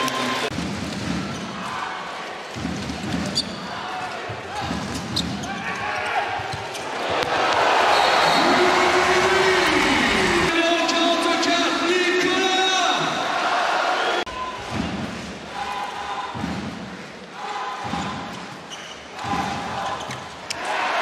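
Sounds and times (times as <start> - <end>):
arena crowd noise: 0.0 - 21.0
crowd chanting: 13.2 - 14.3.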